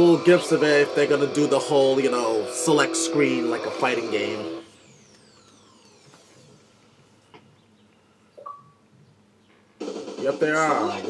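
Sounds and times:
music: 0:00.0 - 0:04.7, 0:09.6 - 0:11.0.

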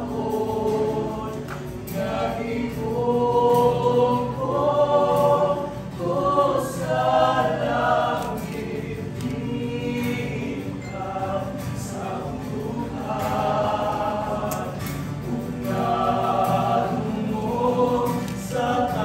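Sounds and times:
group singing in harmony: 0:00.0 - 0:19.0.

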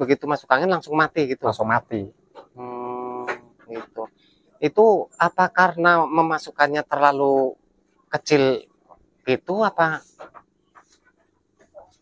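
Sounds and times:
goats munching grass: 0:09.8 - 0:12.0.

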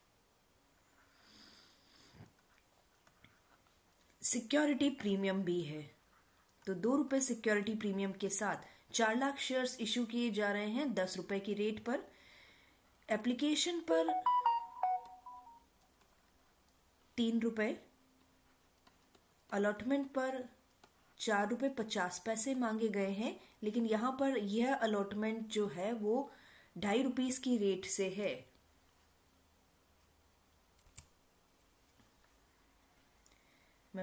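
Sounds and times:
faint room hiss: 0:00.0 - 0:34.0
short electronic jingle: 0:14.1 - 0:15.6.

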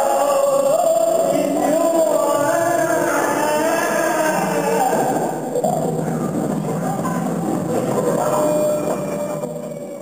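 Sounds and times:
voices singing long held notes: 0:00.0 - 0:10.0.

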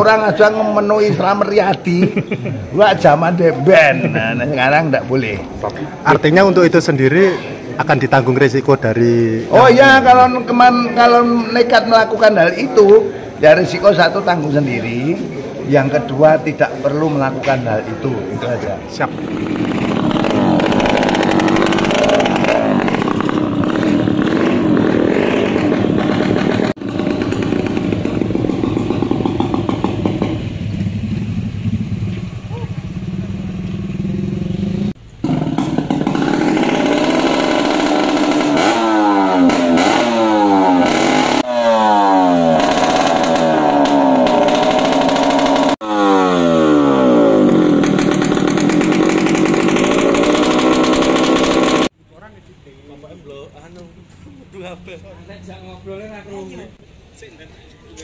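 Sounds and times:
motorcycle with loud open exhaust: 0:17.9 - 0:52.0.

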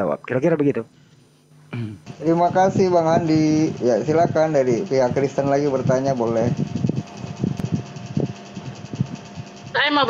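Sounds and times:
microphone hiss and hum: 0:00.0 - 0:10.0.

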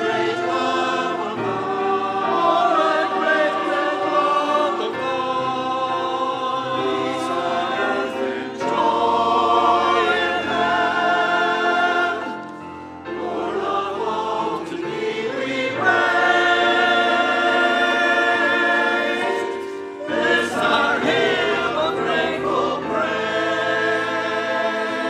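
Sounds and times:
grand piano accompaniment: 0:00.0 - 0:25.0
mixed choir singing: 0:00.0 - 0:25.0.

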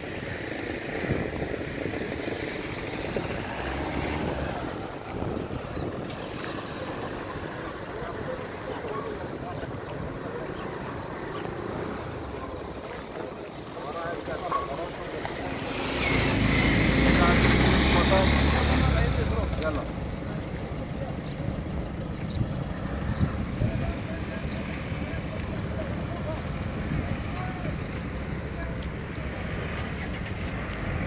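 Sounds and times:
street traffic noise: 0:00.0 - 0:31.0
car passing close by: 0:02.6 - 0:07.7, 0:15.2 - 0:20.0.

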